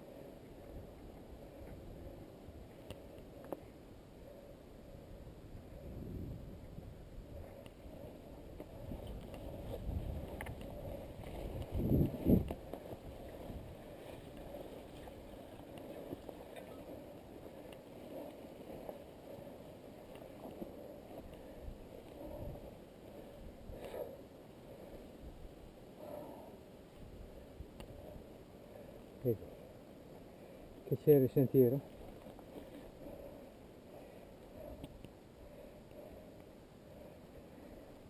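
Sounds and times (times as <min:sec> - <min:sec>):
camera rumbling and rustling: 0:07.4 - 0:25.0.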